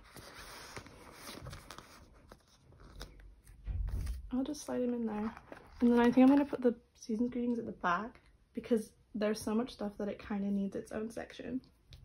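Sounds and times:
plastic pages rustling and crinkling: 0:00.0 - 0:06.7.

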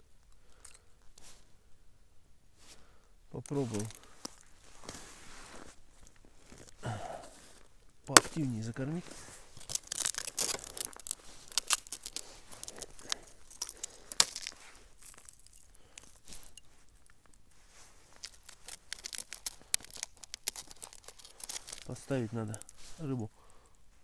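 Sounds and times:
hands rustling plastic bait box: 0:03.5 - 0:23.9.

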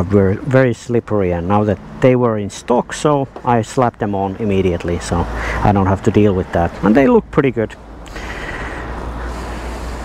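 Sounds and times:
road noise: 0:00.0 - 0:10.0
vehicle engine rumble: 0:00.0 - 0:10.0.

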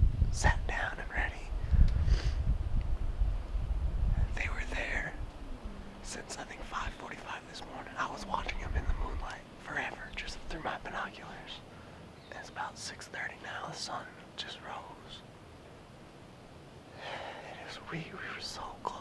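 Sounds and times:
man whispering: 0:00.3 - 0:01.6, 0:04.2 - 0:11.7, 0:12.3 - 0:15.2, 0:16.9 - 0:19.0.

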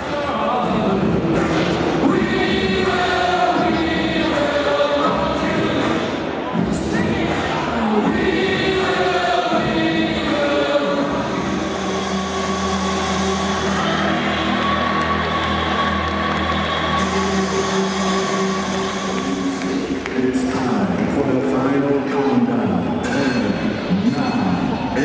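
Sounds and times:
choir singing sustained notes: 0:00.0 - 0:20.0
music: 0:00.0 - 0:25.0.

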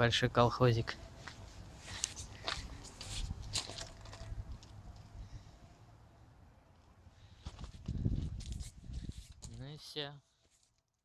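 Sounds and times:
footsteps on gravel: 0:01.2 - 0:04.7.

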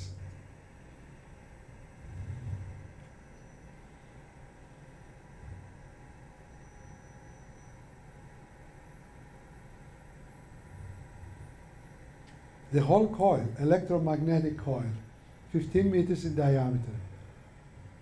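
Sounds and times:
background hiss: 0:00.0 - 0:18.0
low electrical hum: 0:00.0 - 0:18.0.

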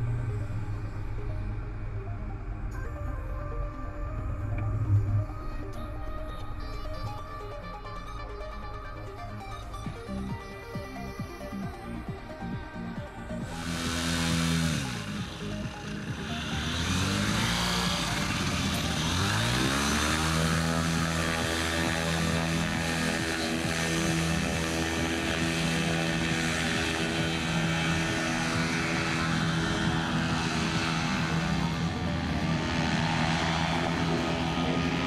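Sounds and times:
paramotor engine and propeller: 0:00.0 - 0:35.0.

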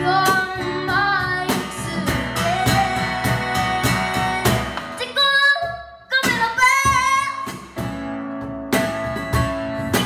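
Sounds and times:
woman singing: 0:00.0 - 0:07.7.

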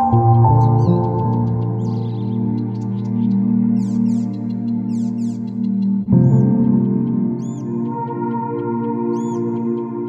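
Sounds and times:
ambient synth chords: 0:00.0 - 0:10.0.

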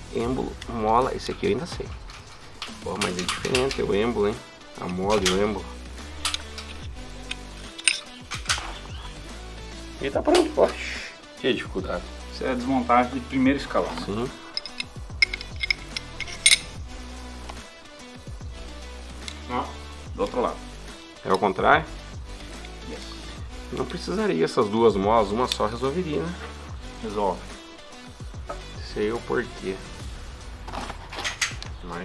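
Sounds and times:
background music with steady beat: 0:00.0 - 0:32.0
light metallic clicks of pistol parts: 0:01.9 - 0:03.9, 0:06.2 - 0:08.6, 0:14.0 - 0:16.8, 0:22.5 - 0:23.2.

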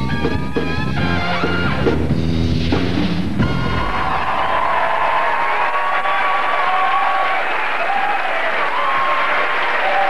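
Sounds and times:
audience applauding and cheering: 0:03.4 - 0:10.0.

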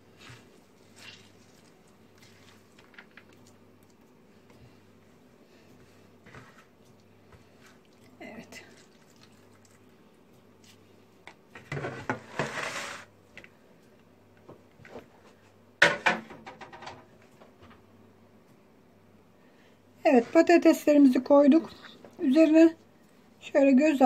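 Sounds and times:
rustling and scraping: 0:05.6 - 0:07.8, 0:11.5 - 0:13.5, 0:14.7 - 0:15.6.

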